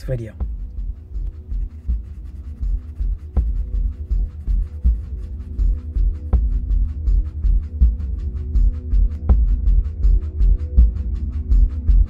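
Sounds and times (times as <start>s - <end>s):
background music with pulsing beat: 0.0s - 12.0s
pencil scratching on paper: 1.2s - 7.6s.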